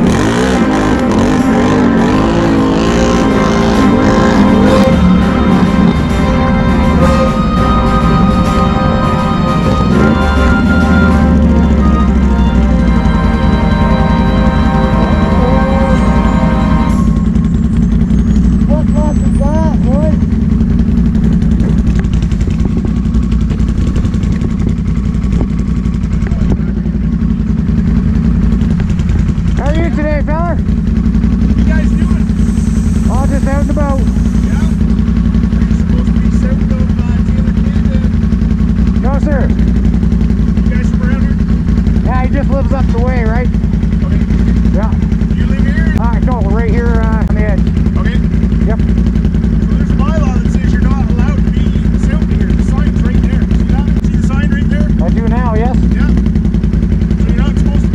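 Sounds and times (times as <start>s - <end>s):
quad bike engine idling: 0.0s - 57.9s.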